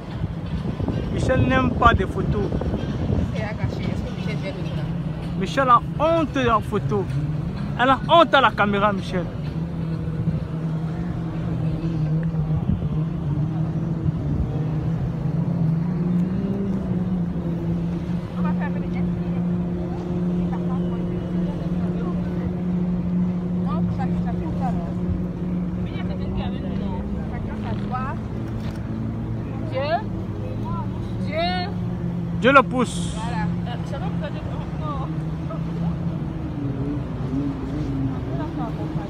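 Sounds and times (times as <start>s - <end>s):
hull on water: 0.0s - 39.0s
motorboat engine droning: 0.0s - 39.0s.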